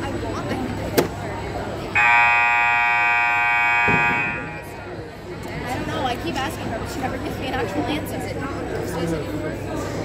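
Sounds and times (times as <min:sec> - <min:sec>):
scoreboard buzzer: 0:02.0 - 0:04.7.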